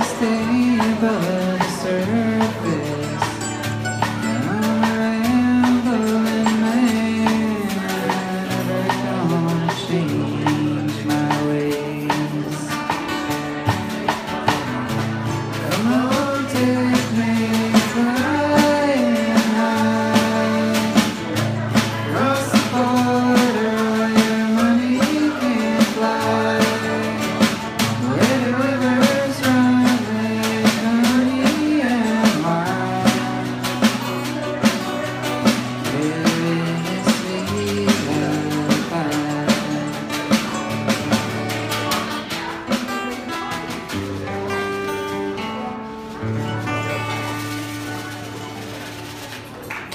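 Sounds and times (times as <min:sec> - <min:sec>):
person singing: 0:00.0 - 0:14.1, 0:15.4 - 0:45.6
steady drum beat: 0:00.0 - 0:49.6
acoustic guitar: 0:00.0 - 0:49.9
mandolin: 0:00.0 - 0:49.9.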